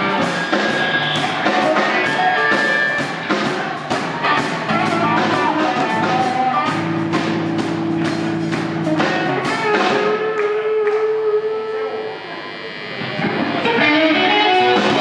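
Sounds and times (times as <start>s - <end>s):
band playing electric guitars and drums: 0.0s - 15.0s
guitar sustained notes: 4.2s - 15.0s.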